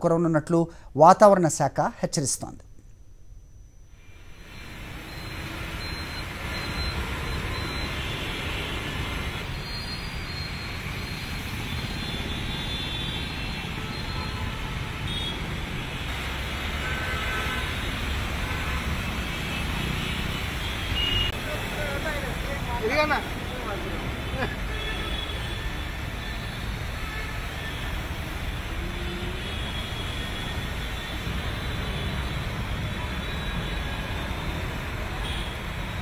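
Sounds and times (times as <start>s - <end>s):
steady wash of traffic noise: 3.8s - 36.0s
vehicle engines: 4.3s - 36.0s.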